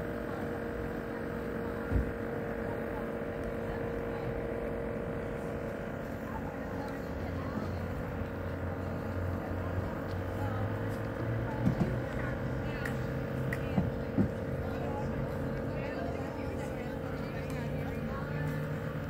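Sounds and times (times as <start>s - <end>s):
faint voices: 0.0s - 19.0s
steady hum: 0.0s - 19.0s
vehicle engine droning: 0.0s - 19.0s.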